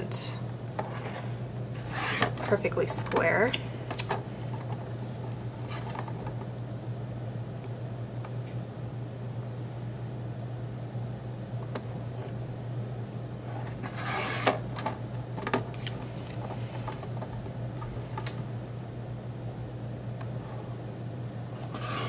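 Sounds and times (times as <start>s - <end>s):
steady low hum: 0.0s - 22.0s
paper trimmer blade scraping: 1.8s - 2.3s, 13.8s - 14.6s, 21.7s - 22.0s.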